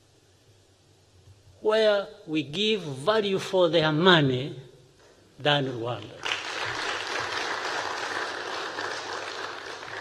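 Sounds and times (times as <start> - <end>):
audience clapping: 6.0 - 10.0.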